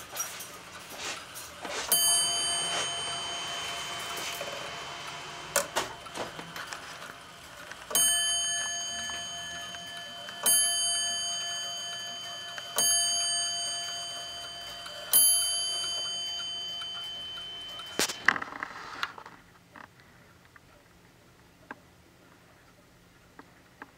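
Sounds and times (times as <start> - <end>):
wall clock bell striking: 0.0 - 18.5.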